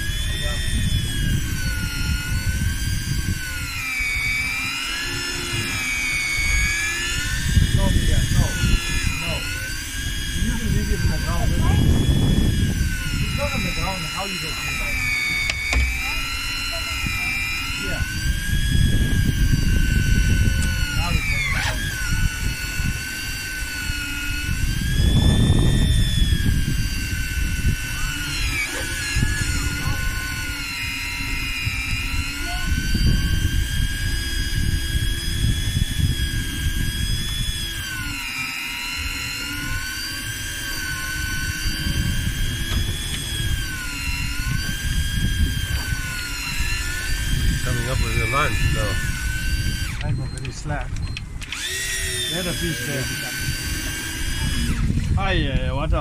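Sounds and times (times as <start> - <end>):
low rumbling noise: 0.0 - 38.2
electric fishing reel motor whining: 0.0 - 56.0.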